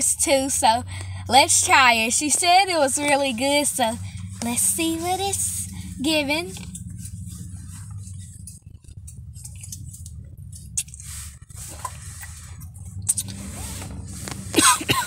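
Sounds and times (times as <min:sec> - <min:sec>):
car interior hum: 0:00.0 - 0:15.0.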